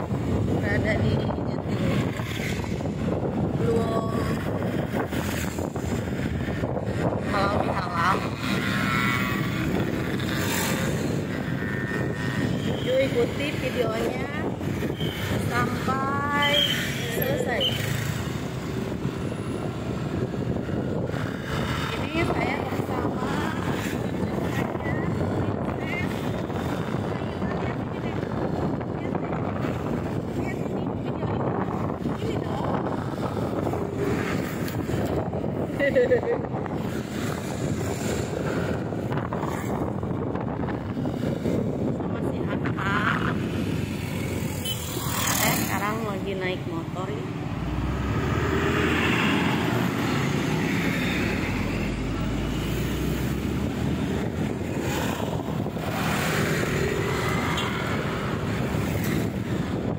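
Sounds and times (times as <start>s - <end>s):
wind noise on microphone: 0.0s - 59.9s.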